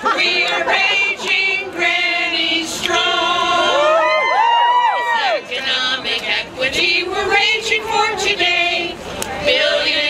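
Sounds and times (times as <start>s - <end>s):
voices whooping: 3.6s - 5.5s.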